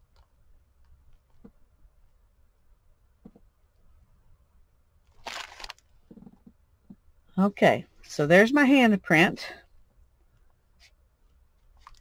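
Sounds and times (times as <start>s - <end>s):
paper crinkling: 5.1s - 5.9s.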